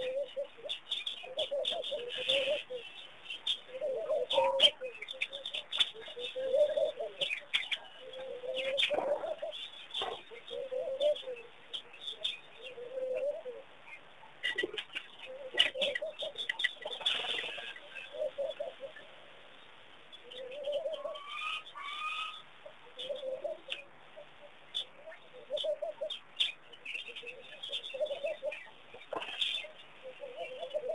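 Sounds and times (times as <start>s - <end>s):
bird cooing: 0.0s - 13.7s, 14.4s - 19.1s, 20.2s - 30.9s.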